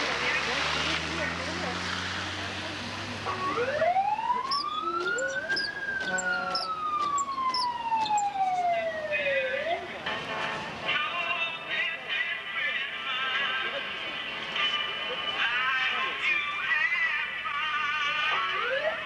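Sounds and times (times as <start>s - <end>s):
emergency siren wailing: 3.3s - 10.0s, 18.5s - 19.0s.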